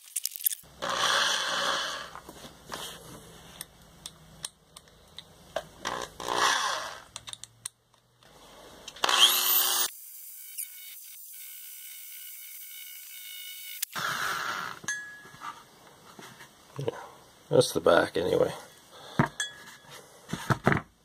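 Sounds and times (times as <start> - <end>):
electric drill grinding metal: 0.8 - 2.2, 5.8 - 7.1, 9.0 - 14.8.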